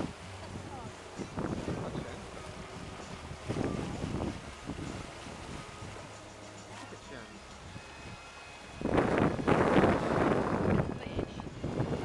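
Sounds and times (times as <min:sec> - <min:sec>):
wind buffeting microphone: 0:00.0 - 0:06.5, 0:07.2 - 0:12.0.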